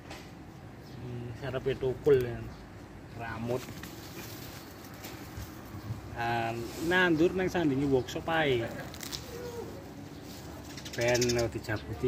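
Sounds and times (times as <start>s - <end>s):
quiet outdoor ambience: 0.0s - 12.0s
dove cooing: 9.2s - 10.0s.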